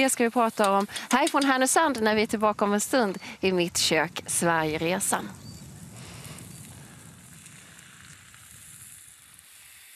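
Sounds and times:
stew sizzling in a pot: 5.4s - 9.9s.

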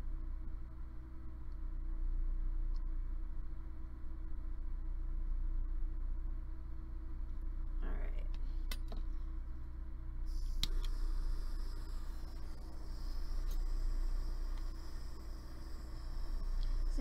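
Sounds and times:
low steady hum: 0.0s - 17.0s
steady gas hiss: 10.2s - 17.0s
torch igniter click: 10.4s - 11.1s.

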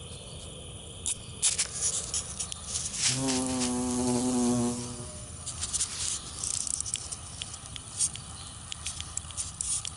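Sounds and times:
faint outdoor background hiss: 0.0s - 9.9s.

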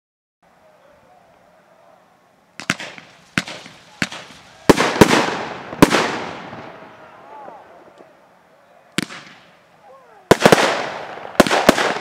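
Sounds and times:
fireworks bangs with echo: 2.6s - 8.1s, 9.0s - 9.6s, 10.3s - 12.0s.

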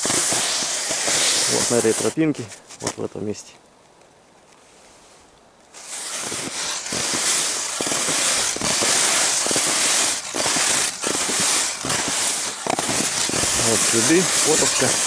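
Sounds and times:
footsteps crunching in snow: 5.8s - 15.0s.

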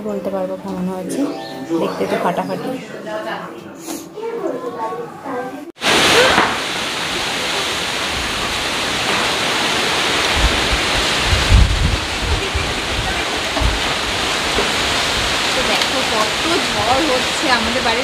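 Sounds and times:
storm wind through trees: 5.8s - 18.0s
wind buffeting microphone: 9.9s - 18.0s.

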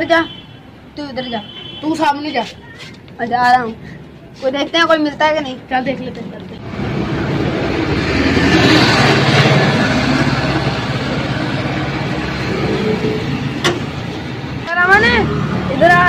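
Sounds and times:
road traffic noise: 0.0s - 16.0s
vehicle passing: 5.6s - 16.0s.

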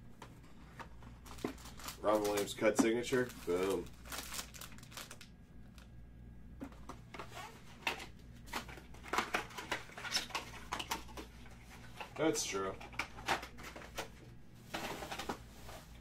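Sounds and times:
low steady hum: 0.0s - 16.0s
packaging rustling and crinkling: 0.8s - 5.9s.

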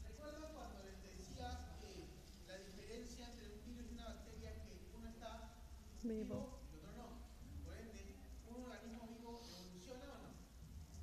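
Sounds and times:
man lecturing: 0.0s - 5.7s, 6.4s - 10.5s.

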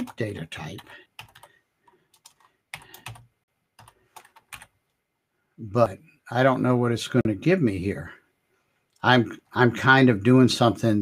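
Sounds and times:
computer keyboard typing: 0.0s - 4.8s.

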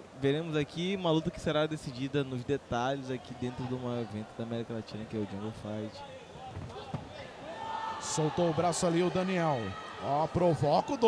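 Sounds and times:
faint shouting voices: 5.3s - 11.0s.

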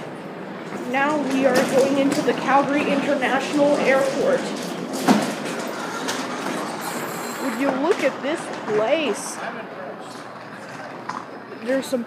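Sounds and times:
busy airport terminal noise: 0.0s - 12.0s.

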